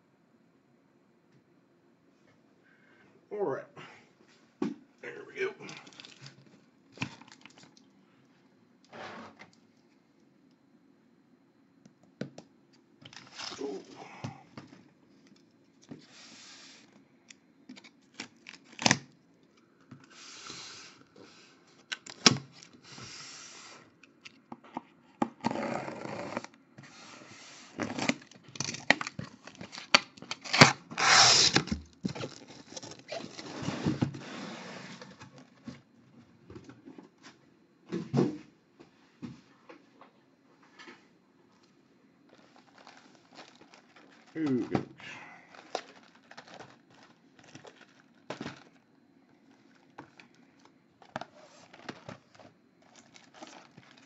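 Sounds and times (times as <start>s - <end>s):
packing tape tearing: 13.0s - 13.9s, 17.7s - 19.1s, 27.8s - 33.6s, 45.5s - 48.8s, 51.0s - 54.0s
cardboard flaps scraping and rustling: 29.4s - 35.8s.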